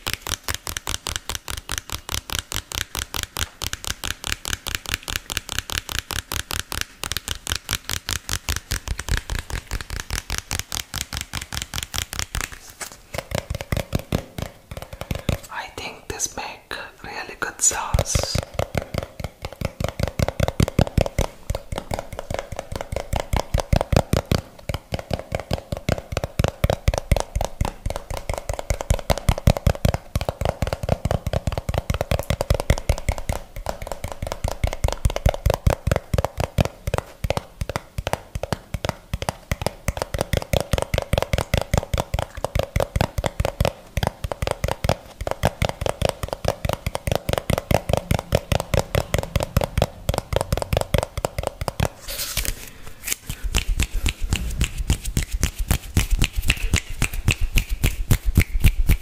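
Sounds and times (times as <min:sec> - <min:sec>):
fingertips tapping plastic jar: 0:00.0 - 0:59.0.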